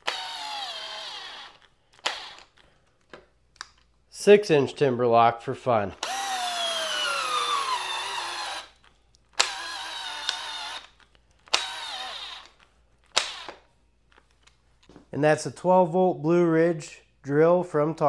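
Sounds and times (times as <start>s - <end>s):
cordless drill driving screw into wood: 0.0s - 2.6s, 6.0s - 13.6s.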